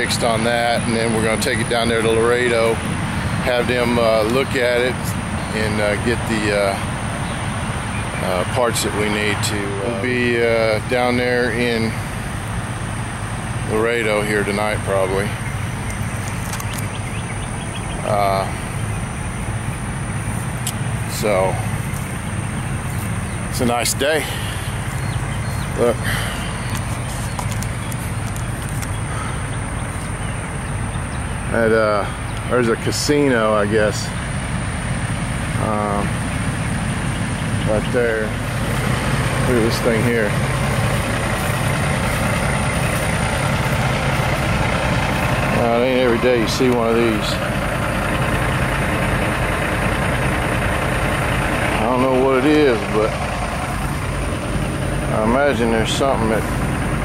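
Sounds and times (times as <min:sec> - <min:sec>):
truck engine running: 0:00.0 - 0:57.0.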